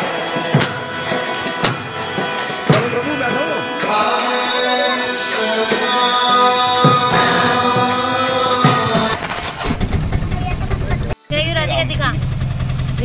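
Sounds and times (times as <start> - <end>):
devotional music: 0.0 - 9.8
high voices: 0.0 - 12.2
vehicle engine rumbling: 5.0 - 13.0.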